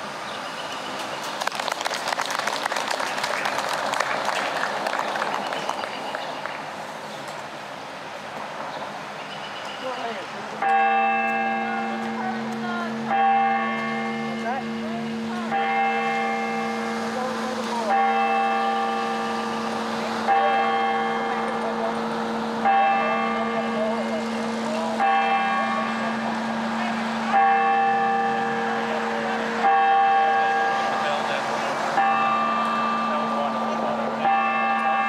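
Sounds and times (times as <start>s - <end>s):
large bell tolling: 10.6s - 35.0s.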